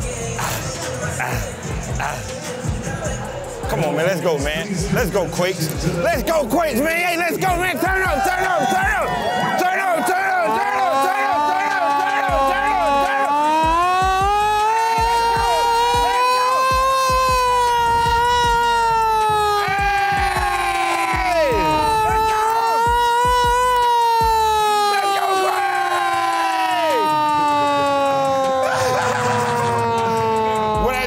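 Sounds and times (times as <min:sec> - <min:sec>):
crowd cheering and yelling: 0:05.8 - 0:31.0
hand-cranked siren wailing: 0:11.4 - 0:30.9.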